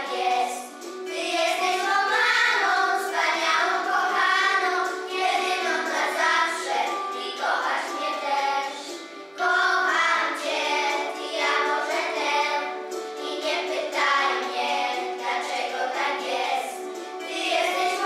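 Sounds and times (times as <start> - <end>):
children singing in unison: 0.0 - 18.0.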